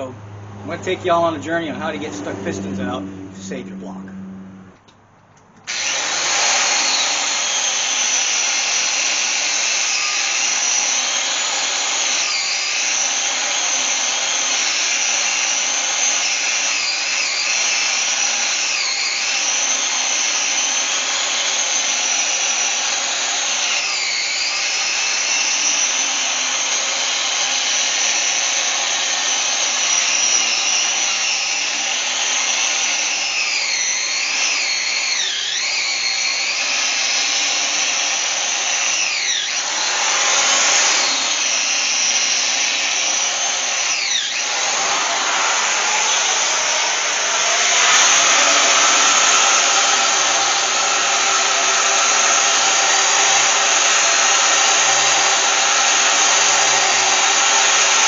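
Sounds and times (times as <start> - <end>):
wire-wheel tool whining on metal: 1.9 - 58.0.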